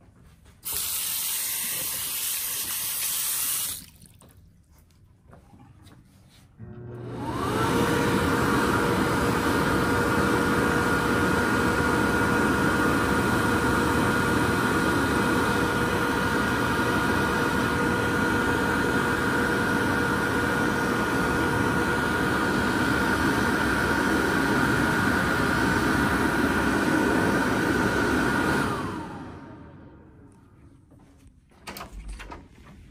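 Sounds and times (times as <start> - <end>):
electric hand dryer whine: 0.6 - 3.9, 6.6 - 30.4.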